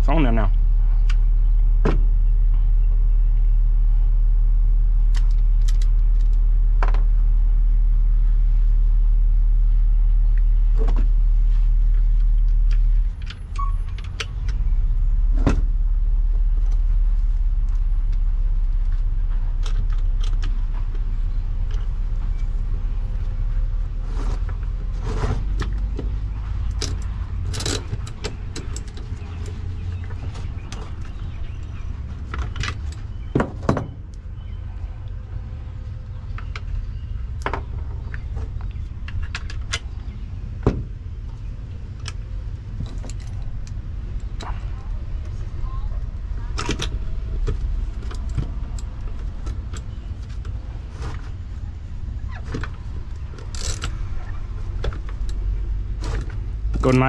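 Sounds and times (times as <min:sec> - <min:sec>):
steady low rumble: 0:00.0 - 0:57.0.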